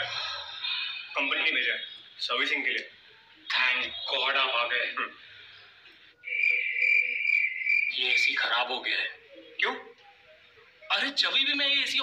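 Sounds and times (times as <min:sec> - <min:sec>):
faint higher chirps: 0:05.4 - 0:10.9
high-pitched chirring tone: 0:06.2 - 0:08.5.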